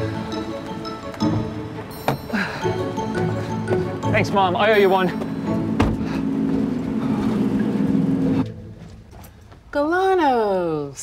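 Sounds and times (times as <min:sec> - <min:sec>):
van engine humming: 0:00.0 - 0:09.7.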